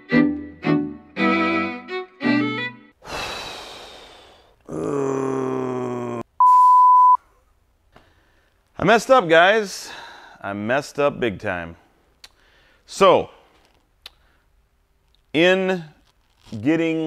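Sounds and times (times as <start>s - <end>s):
man groaning: 3.2s - 6.3s
censor bleep: 6.4s - 7.2s.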